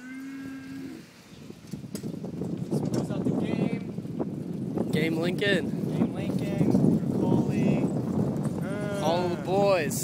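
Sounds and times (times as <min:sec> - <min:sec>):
man yelling: 0:08.6 - 0:10.0.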